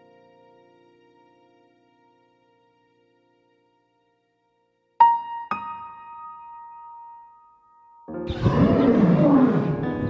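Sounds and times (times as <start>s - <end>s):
sustained keyboard notes: 8.1s - 10.0s
lion roar with swooping pitch: 8.3s - 10.0s.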